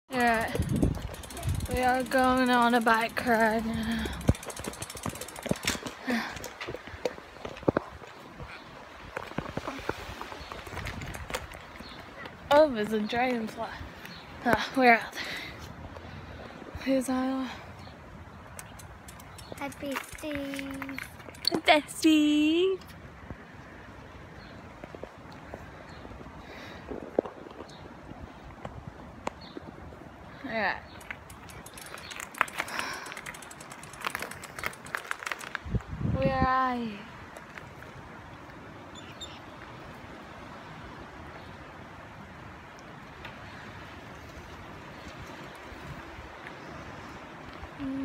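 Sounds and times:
bicycle riding rumble: 0:00.0 - 0:48.0
bicycle rattling and clicking: 0:00.1 - 0:07.2, 0:18.5 - 0:21.8, 0:30.8 - 0:35.8.

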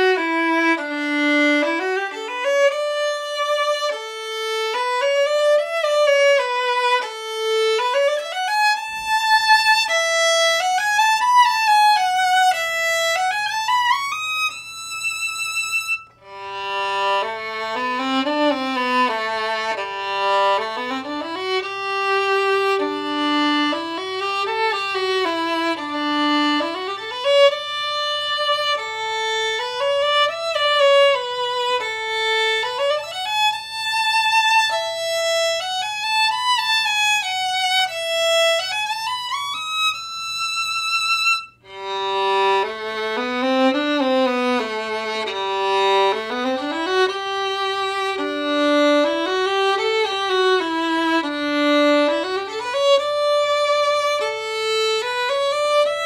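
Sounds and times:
solo violin playing fiddle tune: 0:00.0 - 0:56.0.

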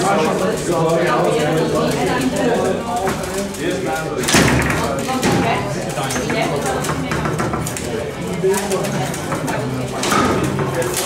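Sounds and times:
voices talking: 0:00.0 - 0:11.0
table football ball clacks: 0:04.2 - 0:11.0.

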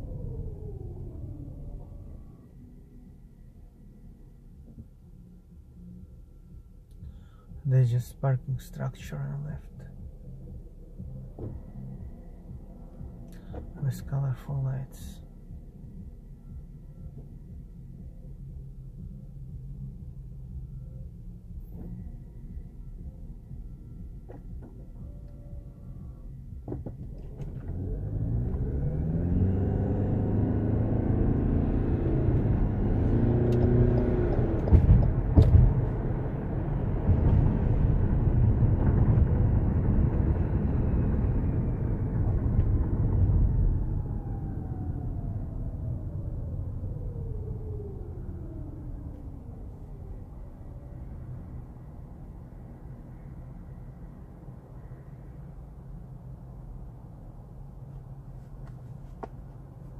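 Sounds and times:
car engine accelerating: 0:03.8 - 0:56.8
tyre and road noise: 0:24.2 - 0:51.2, 0:57.7 - 0:59.9.

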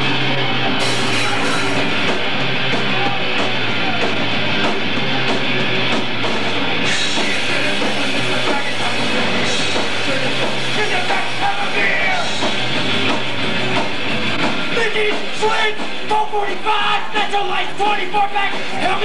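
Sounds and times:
bass guitar: 0:00.0 - 0:19.0
distorted electric guitar: 0:00.0 - 0:19.0
drum kit: 0:00.0 - 0:19.0.

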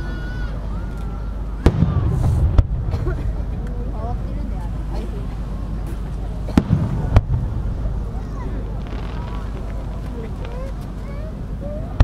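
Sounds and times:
low rumble: 0:00.0 - 0:12.0
firework shells bursting: 0:08.7 - 0:11.0.

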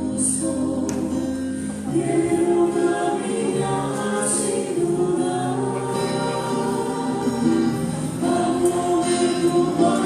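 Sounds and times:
voices singing a slow hymn: 0:00.0 - 0:10.0.

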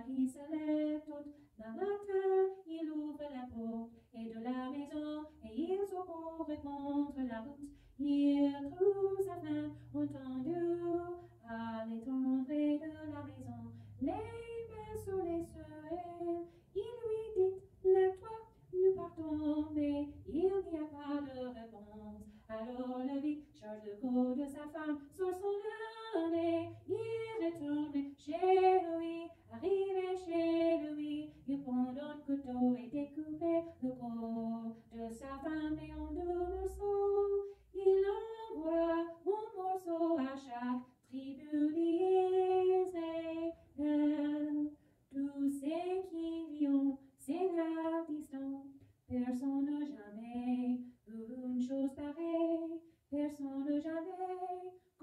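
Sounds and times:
woman singing unaccompanied: 0:00.0 - 0:55.0.

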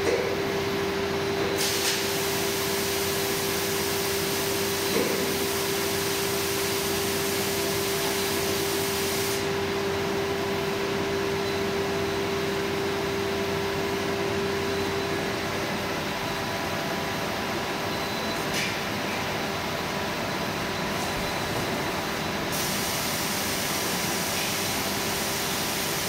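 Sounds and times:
hiss: 0:01.6 - 0:04.6, 0:07.0 - 0:09.5, 0:22.5 - 0:26.0.

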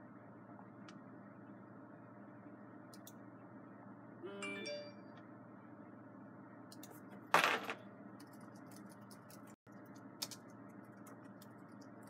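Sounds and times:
short chime-like tone: 0:04.3 - 0:05.1.

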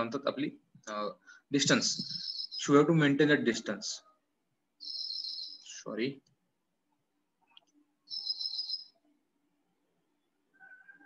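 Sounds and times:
high chirping call: 0:01.8 - 0:02.8, 0:04.8 - 0:05.8, 0:08.1 - 0:09.1.

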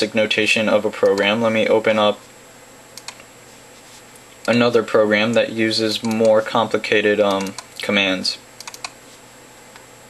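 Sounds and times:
faint computer clicks: 0:01.0 - 0:01.4, 0:03.0 - 0:03.3, 0:08.6 - 0:09.0.

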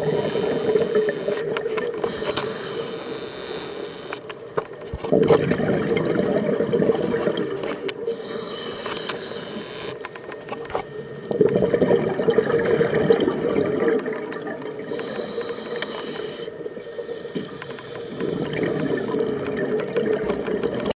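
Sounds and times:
regulator inhalation hiss: 0:02.0 - 0:04.2, 0:07.0 - 0:10.0, 0:14.8 - 0:19.2
exhaled bubbles underwater: 0:05.0 - 0:09.6, 0:10.4 - 0:20.9.

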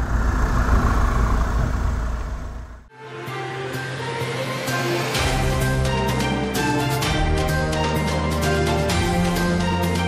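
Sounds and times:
low dense rumble: 0:00.0 - 0:02.9
theme music with ticking beats: 0:03.1 - 0:10.0.

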